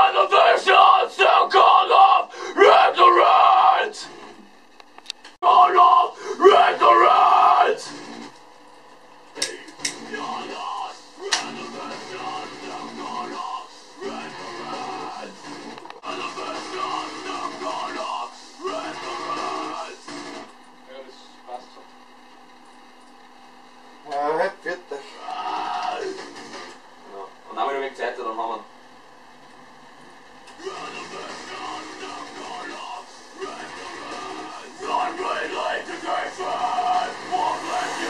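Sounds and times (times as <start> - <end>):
person singing metal vocals: 30.6 - 38.0.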